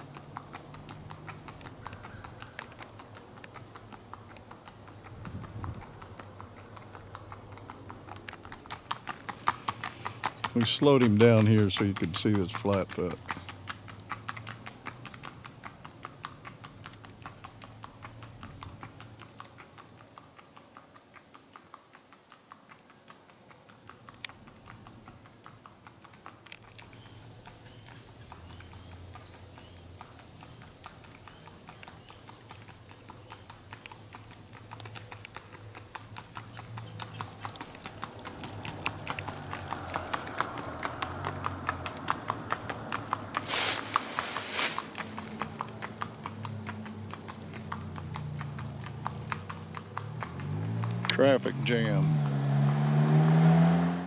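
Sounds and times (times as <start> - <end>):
horse hooves clip-clopping on asphalt: 0.0 - 53.0.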